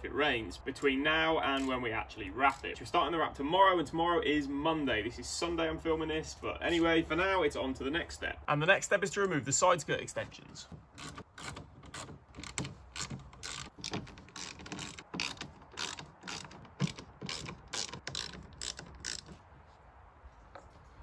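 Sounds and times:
socket ratchet clicking: 11.0 - 19.4.

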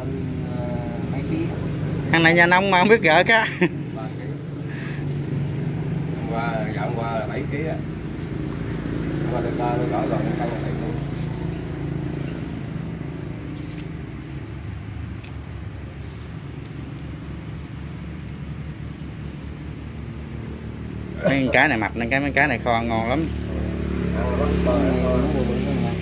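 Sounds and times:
engine droning: 0.0 - 26.0.

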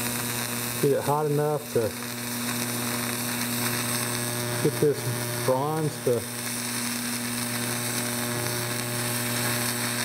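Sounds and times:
welding arc buzzing and hissing: 0.0 - 10.0.

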